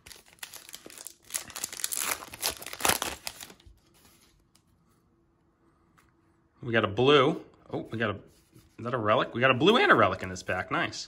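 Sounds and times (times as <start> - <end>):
wrapper crinkling and tearing: 0.0 - 3.6.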